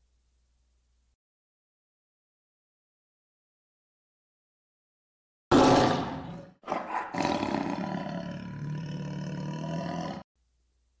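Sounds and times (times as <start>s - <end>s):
tiger roar: 5.5s - 10.3s.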